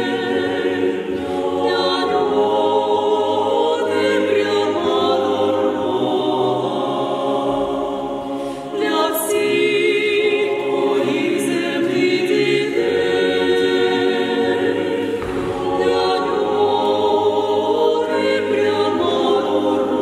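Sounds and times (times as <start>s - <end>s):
choir singing a cappella: 0.0s - 20.0s.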